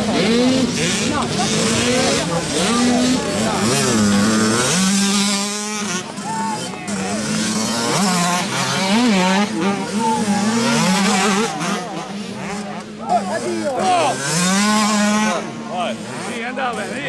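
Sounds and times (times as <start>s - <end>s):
motocross bikes revving: 0.0s - 17.0s.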